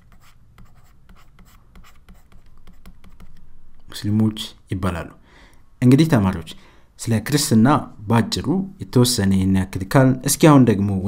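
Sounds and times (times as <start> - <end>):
stylus scratching on tablet: 0.0 - 3.4.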